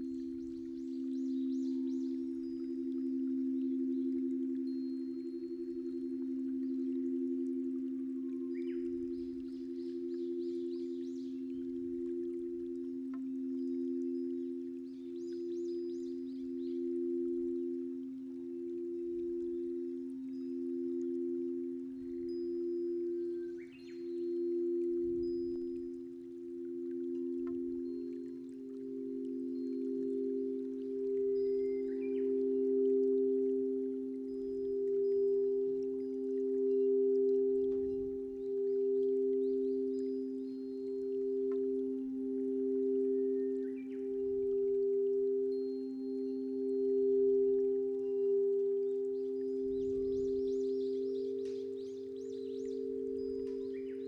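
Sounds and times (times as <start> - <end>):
crystal singing bowls ringing: 0.0 - 54.0
light high chiming: 0.0 - 54.0.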